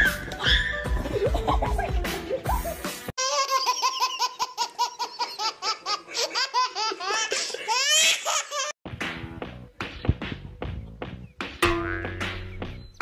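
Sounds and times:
baby laughing: 0.3 - 8.8.

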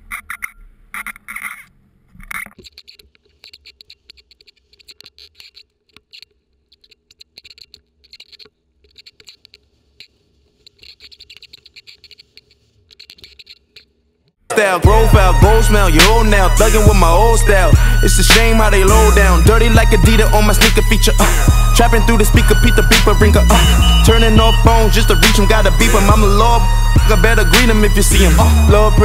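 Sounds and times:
crackling and scratching noise: 0.0 - 14.4.

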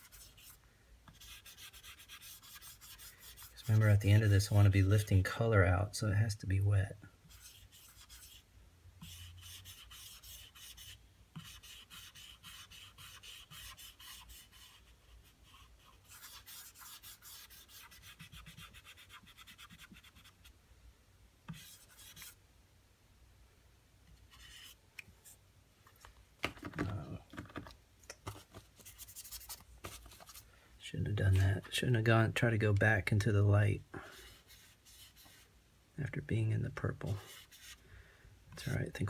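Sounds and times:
marker tip scratching surface: 0.0 - 4.3, 7.3 - 8.4, 9.0 - 20.4, 21.5 - 22.4, 24.3 - 24.8, 34.2 - 35.4.

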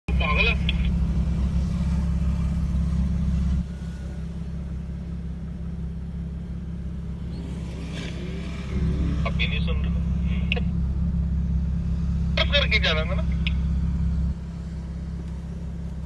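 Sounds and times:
car engine rumble inside cabin: 0.1 - 16.0.

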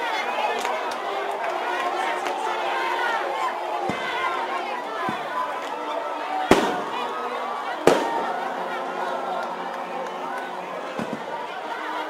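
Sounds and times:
outdoor crowd chatter: 0.0 - 12.0
sharp loud bangs: 6.5 - 7.0, 7.9 - 8.5.

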